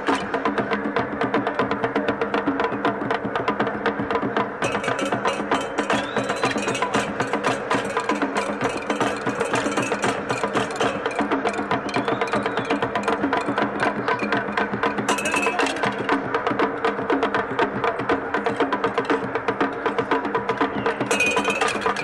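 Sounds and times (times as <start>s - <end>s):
percussion music: 0.0s - 22.0s.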